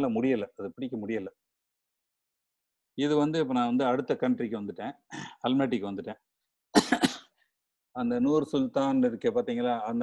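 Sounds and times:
man clearing his throat: 6.8 - 7.3.

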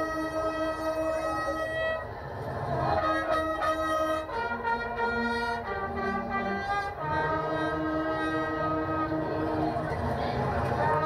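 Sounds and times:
brass band holding a chord: 2.7 - 11.0.

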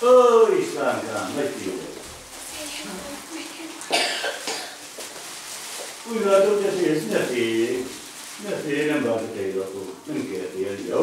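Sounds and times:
person coughing: 3.9 - 4.8.

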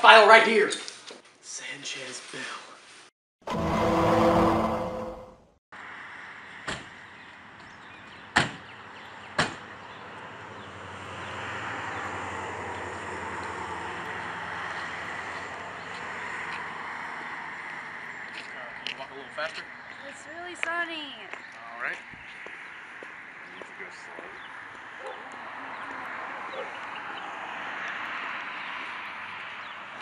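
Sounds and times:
outdoor traffic rush: 3.4 - 30.0
loud rush of noise: 3.5 - 5.4.

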